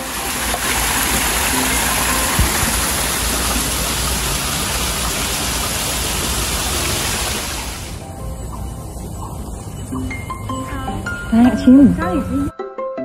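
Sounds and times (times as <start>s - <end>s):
water splashing over rocks: 0.0s - 8.0s
low knock: 2.3s - 2.9s.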